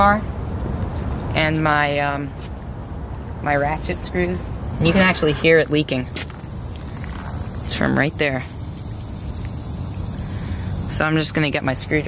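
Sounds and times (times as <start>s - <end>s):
air hissing from tyre: 4.6s - 12.0s.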